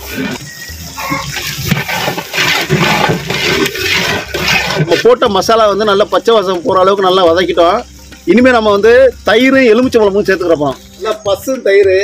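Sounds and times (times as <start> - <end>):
pot of gravy boiling hard: 0.0 - 11.0.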